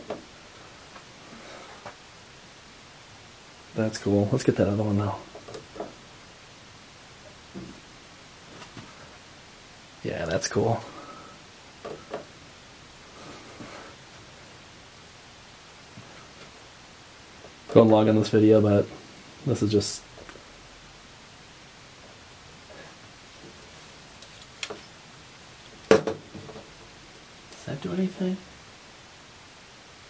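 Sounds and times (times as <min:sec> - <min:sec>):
low room hiss: 0:00.0 - 0:30.0.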